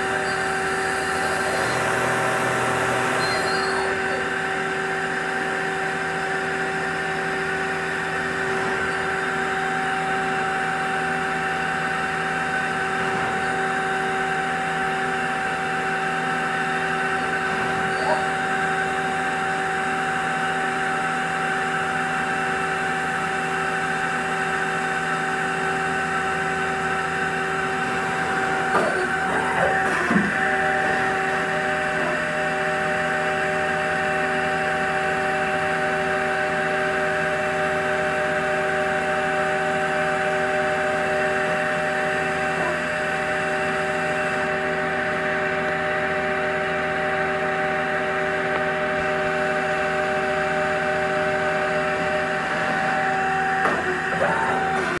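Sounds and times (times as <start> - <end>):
machine hum with whining tones: 0.0 - 55.0.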